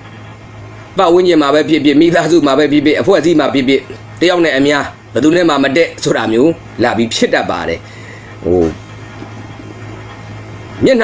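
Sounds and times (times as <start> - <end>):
faint steady low hum: 0.0 - 11.0
man talking: 1.0 - 8.8, 10.8 - 11.0.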